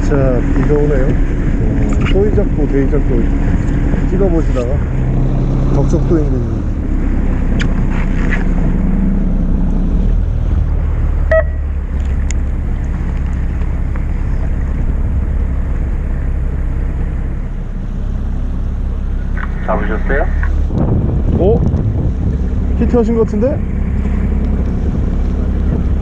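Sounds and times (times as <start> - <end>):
wind on microphone: 0.0 - 5.7, 20.5 - 22.8, 23.6 - 26.0
boat engine running: 0.0 - 26.0
water around hull: 10.2 - 18.2.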